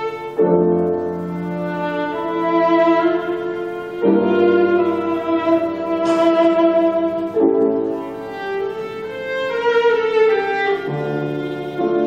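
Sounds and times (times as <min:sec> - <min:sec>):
piano accompaniment: 0:00.0 - 0:12.0
viola bowed notes: 0:00.0 - 0:12.0.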